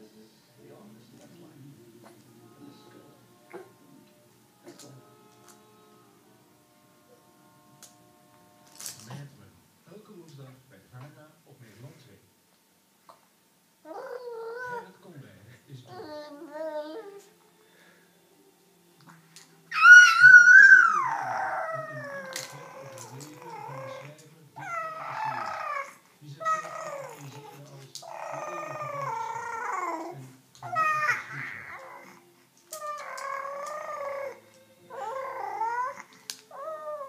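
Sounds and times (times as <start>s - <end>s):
baby cooing: 13.8s - 14.9s, 15.9s - 17.4s, 19.7s - 37.0s.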